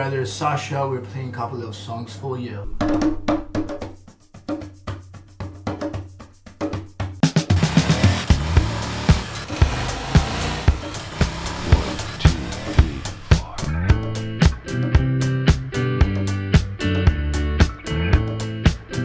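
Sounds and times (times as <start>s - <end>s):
sparse percussion: 2.8s - 14.7s.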